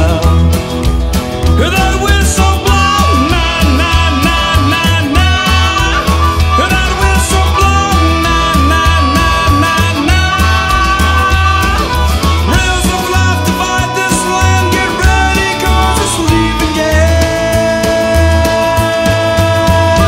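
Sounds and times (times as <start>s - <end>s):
held lead guitar notes: 0.0s - 20.0s
pulsing bass line: 0.0s - 20.0s
rock band playing instrumental: 0.0s - 20.0s.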